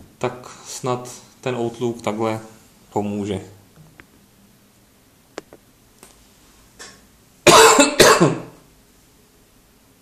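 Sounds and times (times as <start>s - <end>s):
person coughing loudly: 7.4s - 8.6s.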